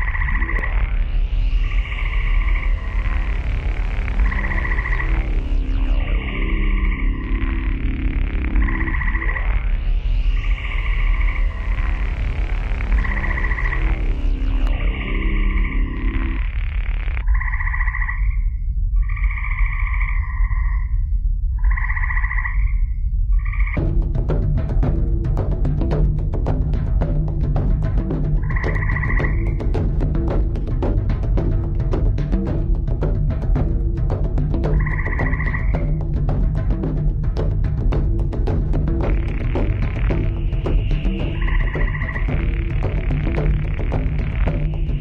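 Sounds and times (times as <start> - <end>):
frog pulsing trill call: 0.0 - 23.8, 28.4 - 30.0, 34.7 - 36.0, 39.0 - 45.0
deep bass drone: 0.0 - 45.0
steady low rumble: 0.0 - 45.0.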